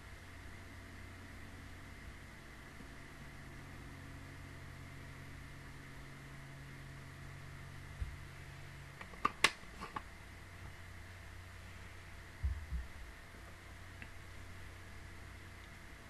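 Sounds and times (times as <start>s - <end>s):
low room hum: 0.0s - 16.0s
dull low thumps: 12.4s - 13.1s.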